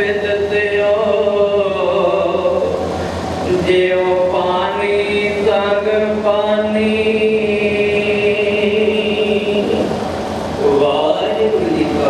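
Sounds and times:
man chanting into microphone: 0.0s - 10.0s, 10.6s - 12.0s.

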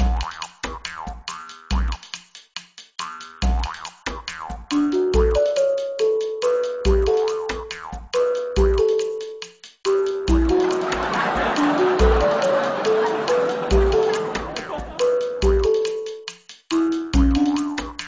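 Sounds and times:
clicky percussion: 0.0s - 18.0s
kick drum beat: 10.3s - 10.6s.

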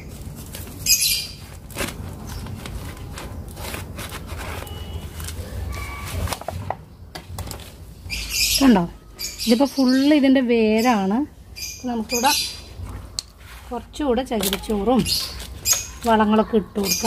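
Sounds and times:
rustling and scraping of leaves: 0.0s - 6.6s, 12.2s - 17.0s.

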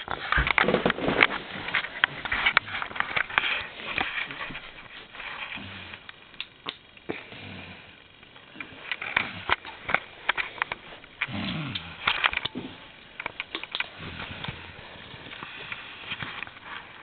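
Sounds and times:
rustling handling noise: 0.0s - 6.3s, 8.4s - 17.0s
quiet breathing: 1.3s - 6.3s, 7.0s - 17.0s.

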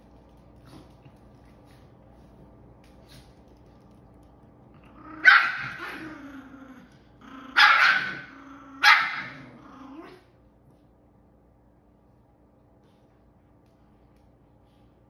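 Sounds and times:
dog growling: 4.8s - 10.3s
small dog barking: 5.2s - 6.0s, 7.5s - 9.5s.

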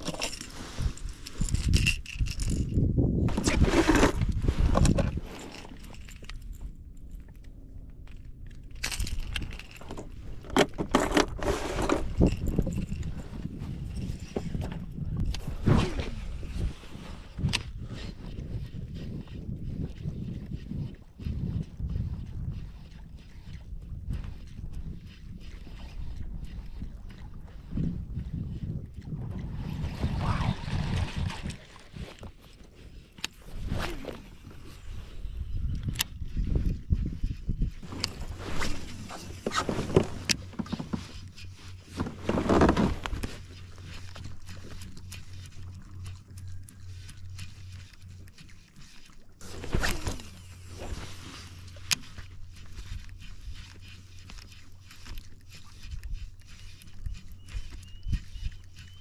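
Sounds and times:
fishing rod casting and reeling: 0.0s - 59.0s
low steady hum: 0.0s - 59.0s
water sloshing against hull: 2.8s - 59.0s.

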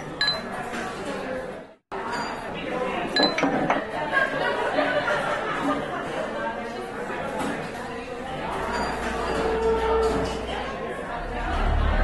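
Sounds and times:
murmur of voices: 0.0s - 12.0s
glass tumbler clinking on counter: 3.2s - 3.8s.

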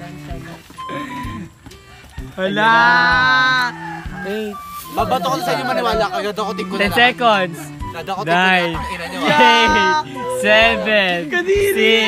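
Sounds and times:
background music: 0.0s - 12.0s
man exclaiming: 2.4s - 3.7s, 8.3s - 12.0s.

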